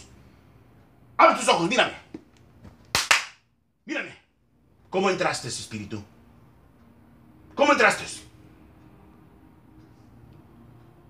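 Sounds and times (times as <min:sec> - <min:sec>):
hand strike smacks: 0:02.9 - 0:03.4.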